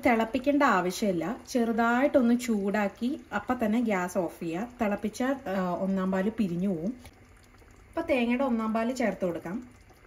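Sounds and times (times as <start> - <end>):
stew simmering in a pan: 0.0 - 10.0.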